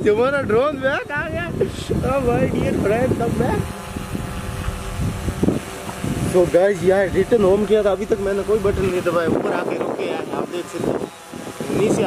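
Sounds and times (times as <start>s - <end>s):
drone propellers humming: 0.0s - 12.0s
wind rumble on microphone: 0.0s - 12.0s.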